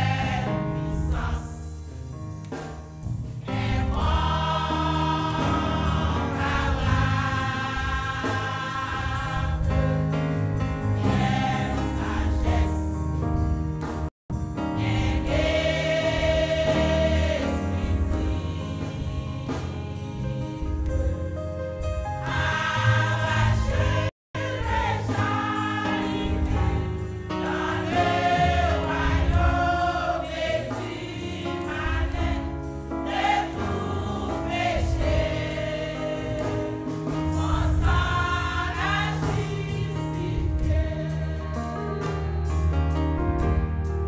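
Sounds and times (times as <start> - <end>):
women's choir singing a hymn: 0.0 - 1.8, 3.4 - 13.0, 14.6 - 20.7, 22.2 - 43.2.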